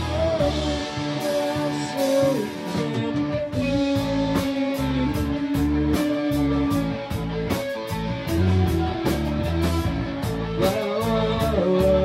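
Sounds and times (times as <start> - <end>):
drum and cymbal hits: 0.0 - 12.0
live rock band playing: 0.0 - 12.0.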